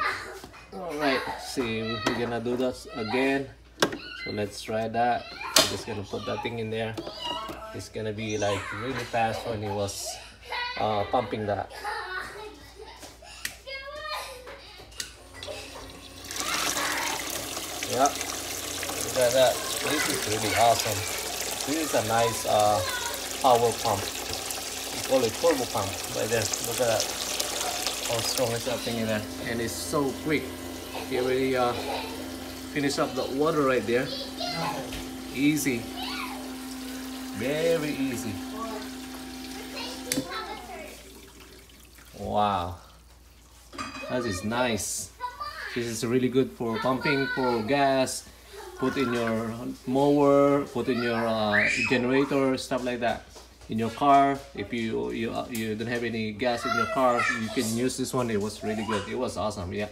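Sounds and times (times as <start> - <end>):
pump motor hum: 15.2 - 42.8
water gushing into plastic bucket: 15.4 - 43.5
water gurgling and trickling: 40.6 - 42.2.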